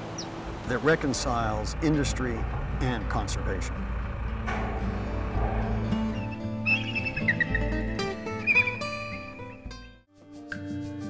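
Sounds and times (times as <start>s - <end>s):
low rumble: 0.0s - 8.6s
music with sustained notes: 2.2s - 11.0s.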